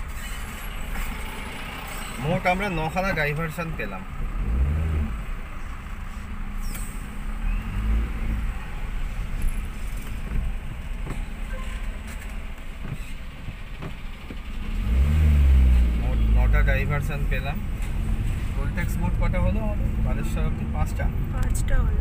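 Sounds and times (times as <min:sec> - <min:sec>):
engine and traffic rumble: 0:00.0 - 0:22.0.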